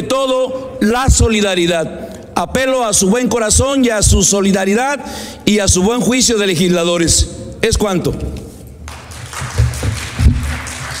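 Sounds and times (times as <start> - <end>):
light applause: 8.9 - 11.0
papers knocked against lectern: 9.1 - 11.0.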